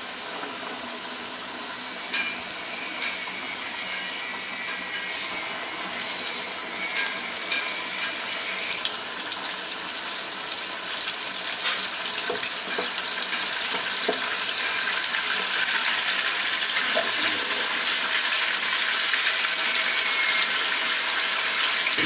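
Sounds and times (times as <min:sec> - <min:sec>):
chicken deep-frying in oil: 0:00.0 - 0:22.0.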